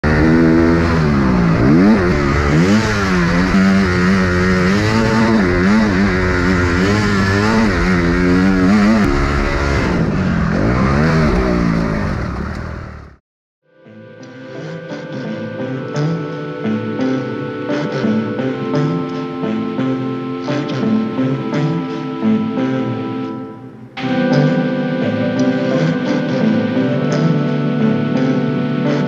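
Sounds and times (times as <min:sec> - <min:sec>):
motorcycle engine revving: 0:00.0 - 0:13.2.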